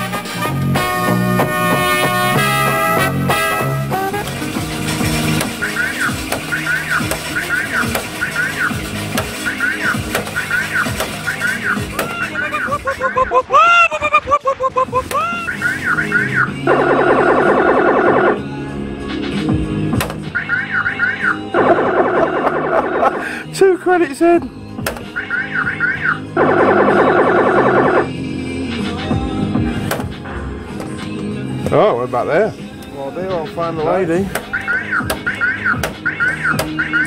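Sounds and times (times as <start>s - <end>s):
harsh buzzing tone: 0.0s - 13.2s, 14.9s - 23.5s, 24.8s - 28.7s
music: 0.0s - 37.0s
electronic chirps: 1.6s - 13.2s, 15.3s - 23.4s, 25.0s - 28.2s, 34.4s - 37.0s
falling voice-like glides: 11.3s - 18.4s.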